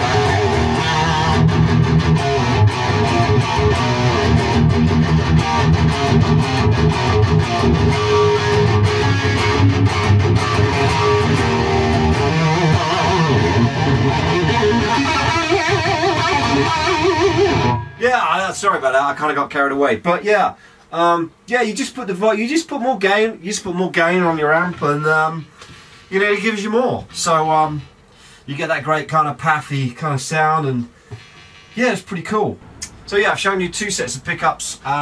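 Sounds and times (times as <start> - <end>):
distorted electric guitar riffing: 0.0 - 18.0.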